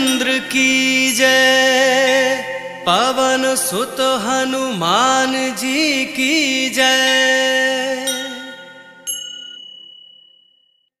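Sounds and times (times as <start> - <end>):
small metal bell ringing: 8.0 - 10.9.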